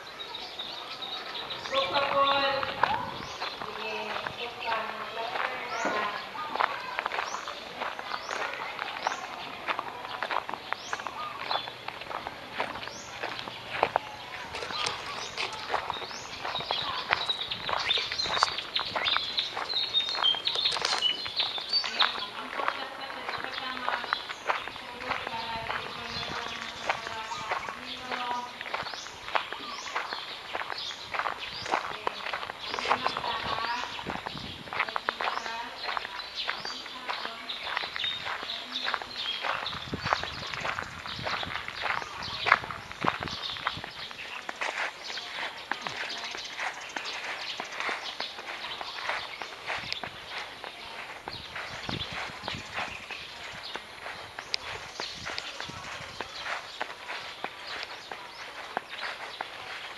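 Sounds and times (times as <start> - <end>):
distant voices: 0.0 - 59.9
footsteps walking outdoors: 0.0 - 59.9.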